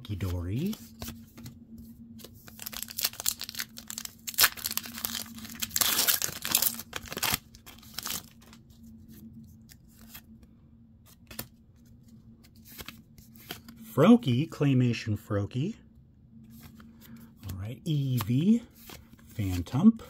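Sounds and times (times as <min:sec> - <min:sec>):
foil wrapper tearing and crinkling: 0:02.5 - 0:08.6.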